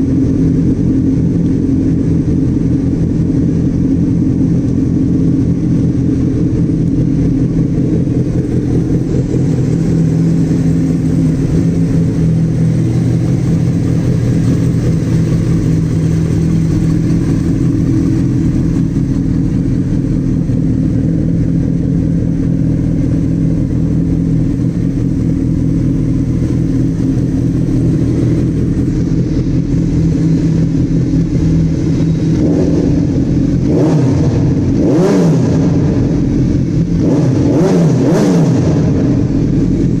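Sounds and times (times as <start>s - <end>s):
motorcycle engine idling: 0.0s - 40.0s
motorcycle engine revving: 0.0s - 40.0s.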